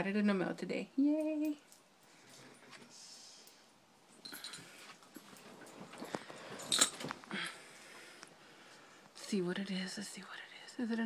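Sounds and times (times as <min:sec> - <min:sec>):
rustling from handling objects: 0:01.7 - 0:09.4.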